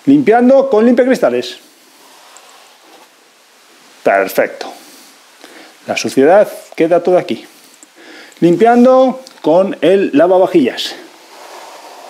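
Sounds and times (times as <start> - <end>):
cloth rubbing on tile grout: 1.6 - 3.2, 8.4 - 9.2, 11.1 - 12.0.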